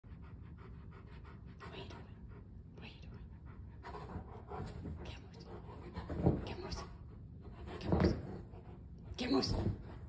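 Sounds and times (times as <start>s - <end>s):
puppy panting: 0.1s - 6.1s.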